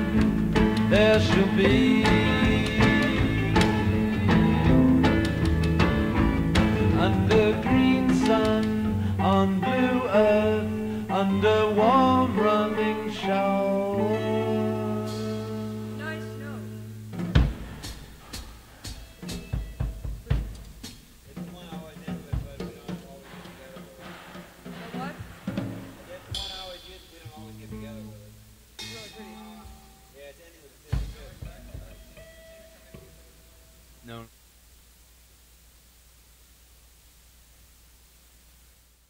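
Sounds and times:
rock band chord: 0.0 - 30.2
drum hits and snare taps: 2.2 - 3.9, 17.1 - 27.5, 30.9 - 32.0
stray instrument notes: 22.6 - 30.2.

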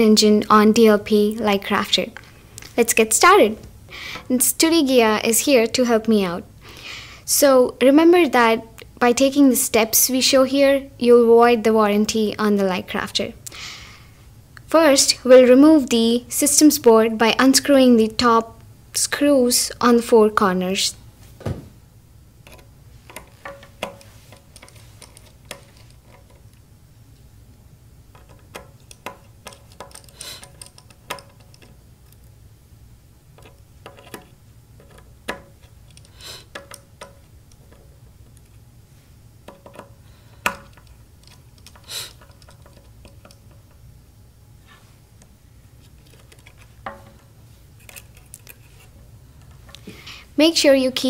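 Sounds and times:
screwdriver and screws clicking: 28.1 - 32.3, 39.5 - 43.7
screwdriver clicking on screws: 28.2 - 31.8.

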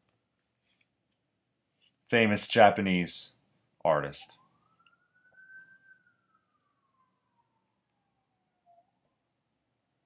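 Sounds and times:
faint siren wail: 3.9 - 10.0.

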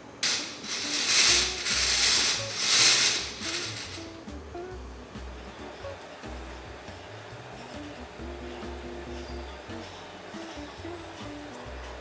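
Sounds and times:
plastic scraping rub: 0.2 - 4.1.

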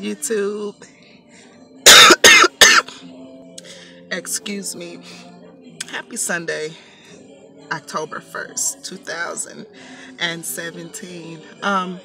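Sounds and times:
woman coughing: 1.8 - 3.0.

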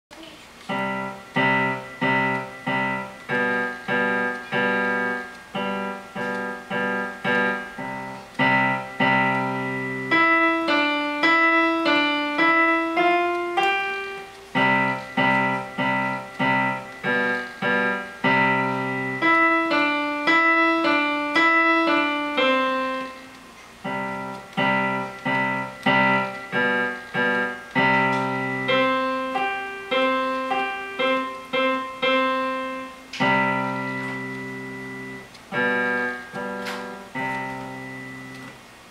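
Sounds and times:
simple piano melody: 0.1 - 38.9
low piano chord struck: 0.7 - 38.6.

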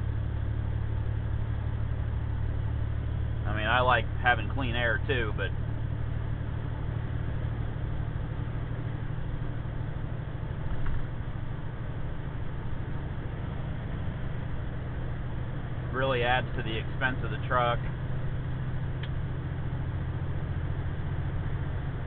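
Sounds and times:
road and wind noise: 0.0 - 22.0
truck engine drone: 0.0 - 22.0.

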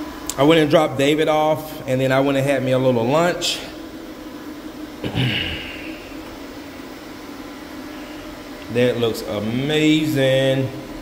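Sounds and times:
floor machine fan humming: 0.0 - 11.0.

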